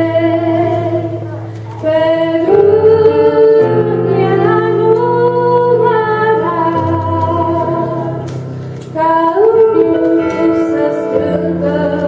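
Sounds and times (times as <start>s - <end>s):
electronic keyboard chords: 0.0s - 12.0s
woman singing: 0.0s - 12.0s.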